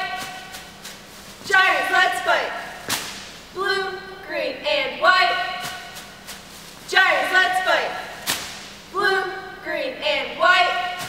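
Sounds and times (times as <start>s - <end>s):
cheerleaders shouting a cheer: 0.0s - 0.6s, 1.4s - 2.8s, 3.6s - 6.0s, 6.9s - 8.3s, 8.9s - 11.0s
sharp smack: 2.9s - 3.3s, 8.2s - 8.7s.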